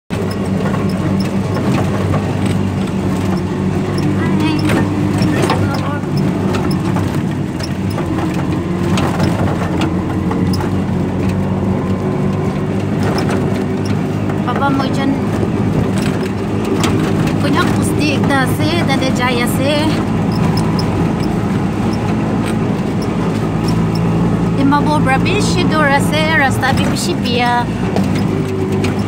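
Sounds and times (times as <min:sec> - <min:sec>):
auto-rickshaw engine running: 0:00.1 - 0:29.0.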